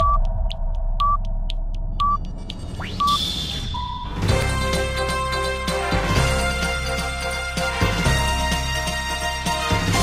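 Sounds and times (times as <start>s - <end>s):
short electronic beeps: 1.0s - 1.2s, 2.0s - 4.2s.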